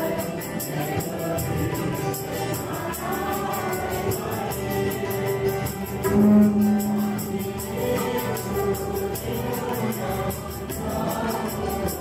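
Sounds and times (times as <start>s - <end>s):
congregation singing: 0.0s - 12.0s
jingling percussion beat: 0.0s - 12.0s.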